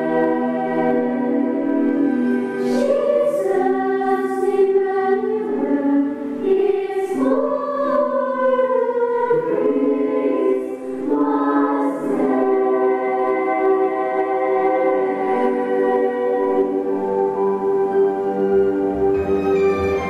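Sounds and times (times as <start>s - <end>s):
women's choir singing: 0.0s - 17.9s.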